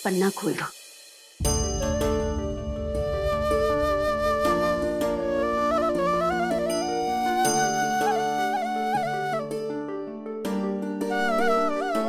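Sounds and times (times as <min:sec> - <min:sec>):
sustained low notes: 0:01.4 - 0:06.8
flute long note: 0:01.5 - 0:09.6.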